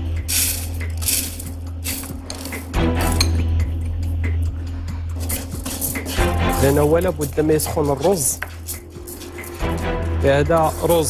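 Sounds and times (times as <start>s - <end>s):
background music: 0.0s - 11.0s
rice rattling in a pan: 0.3s - 2.5s.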